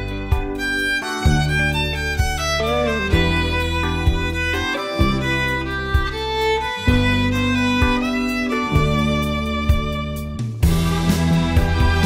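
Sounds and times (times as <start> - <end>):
bowed string melody: 0.0 - 12.0
steady beat: 0.0 - 12.0.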